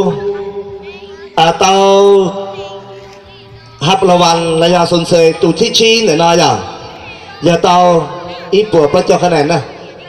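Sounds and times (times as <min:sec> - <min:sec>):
man calling over loudspeakers: 0:00.0 - 0:00.6, 0:01.3 - 0:02.8, 0:03.8 - 0:10.0.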